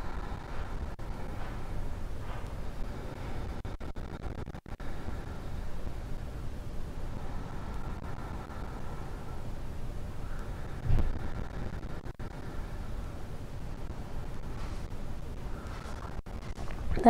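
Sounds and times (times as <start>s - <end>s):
low background rumble: 0.0s - 17.0s.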